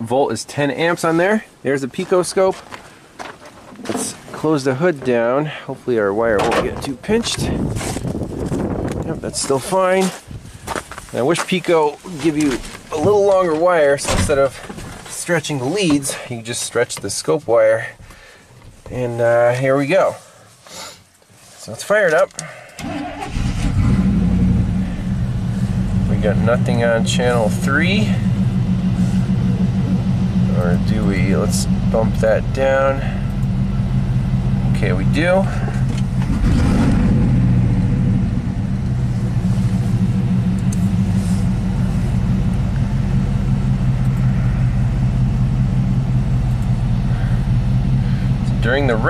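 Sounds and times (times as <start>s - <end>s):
pickup engine running: 22.8s - 49.0s.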